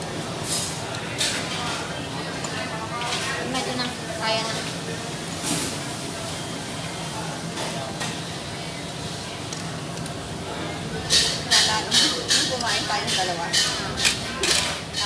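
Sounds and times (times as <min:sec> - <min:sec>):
background chatter: 0:00.0 - 0:15.0
low restaurant hum: 0:00.0 - 0:15.0.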